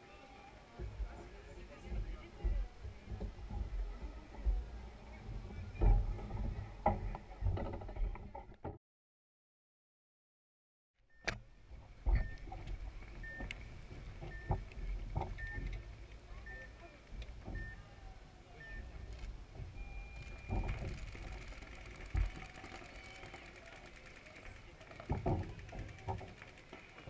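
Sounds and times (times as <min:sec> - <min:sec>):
dull low thumps: 0:00.8 - 0:08.3.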